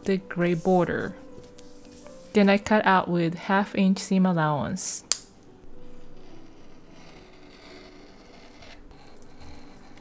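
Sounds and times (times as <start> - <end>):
rotary cutter scraping fabric: 6.2 - 10.0.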